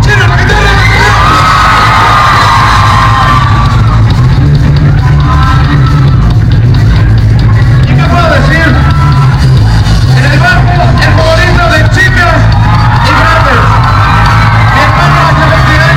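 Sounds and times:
crowd shouting and whooping: 0.0 - 15.9.

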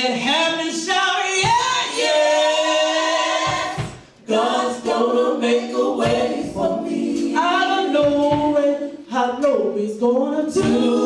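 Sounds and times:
women singing gospel in harmony: 0.0 - 11.0.

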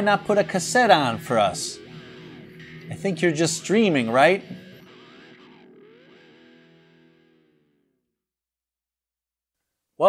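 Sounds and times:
distorted electric guitar chord: 0.0 - 8.1.

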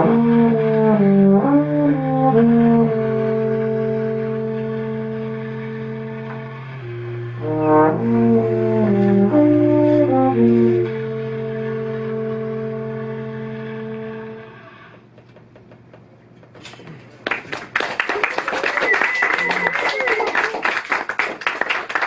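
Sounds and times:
trombone: 0.0 - 14.6
bass clarinet: 0.0 - 14.9, 18.4 - 20.8
low sustained note: 2.2 - 15.0.

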